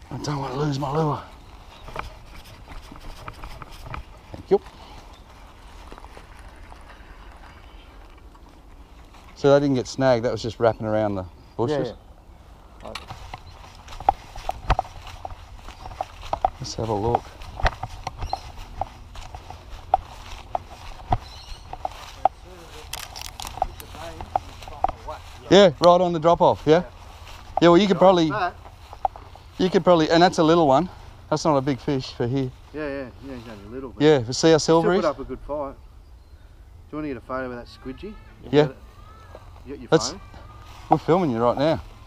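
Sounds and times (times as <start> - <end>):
footsteps on dirt track: 0.0 - 10.2, 12.9 - 33.6
faint voices: 9.2 - 33.8, 37.1 - 42.0
fishing rod handling noise: 17.4 - 25.1.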